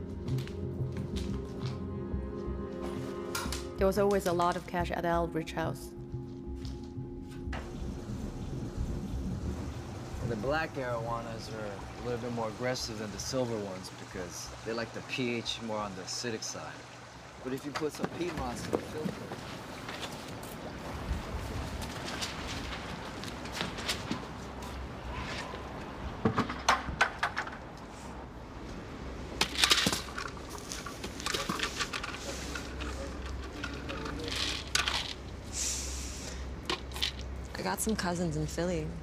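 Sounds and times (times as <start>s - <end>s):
low steady hum: 0.0s - 26.6s, 27.8s - 39.0s.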